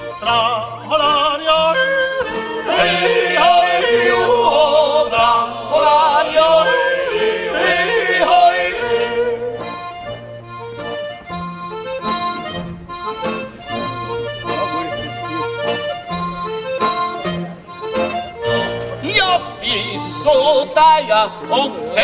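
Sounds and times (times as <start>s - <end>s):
men singing in harmony: 0.0s - 9.8s, 19.0s - 22.0s
accordion chords: 0.0s - 22.0s
strummed acoustic guitar: 0.0s - 22.0s.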